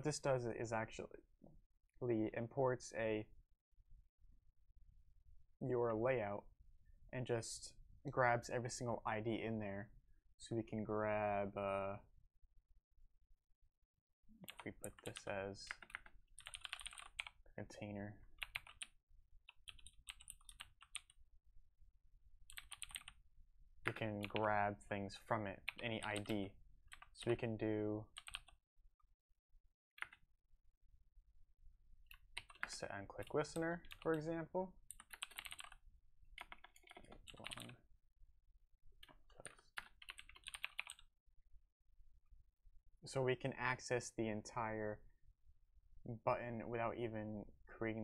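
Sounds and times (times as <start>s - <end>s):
computer keyboard typing: 14.4s - 17.3s, 18.4s - 18.9s, 19.5s - 21.2s, 22.5s - 23.2s, 23.9s - 24.5s, 25.6s - 27.4s, 28.1s - 28.6s, 32.1s - 34.2s, 34.9s - 35.8s, 36.4s - 37.8s, 39.4s - 41.0s.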